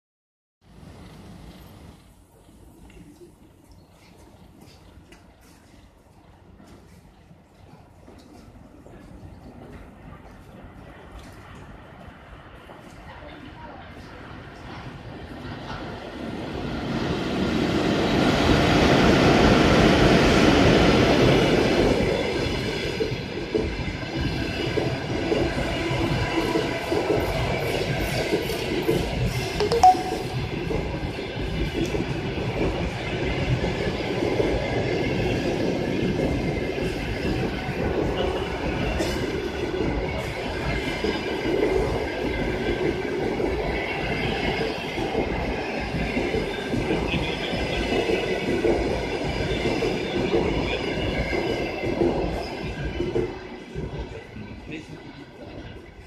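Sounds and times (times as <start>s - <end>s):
train wheels rumbling on rails: 0.7s - 29.6s, 30.7s - 56.0s.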